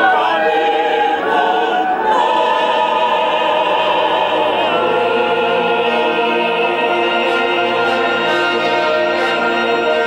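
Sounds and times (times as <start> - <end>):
choir singing: 0.0 - 10.0
brass holding a chord: 4.4 - 10.0.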